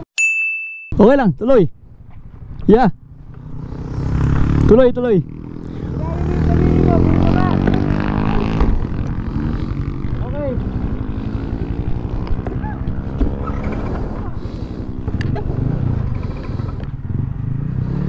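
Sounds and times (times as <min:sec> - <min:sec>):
motorcycle engine running: 0:01.8 - 0:18.0.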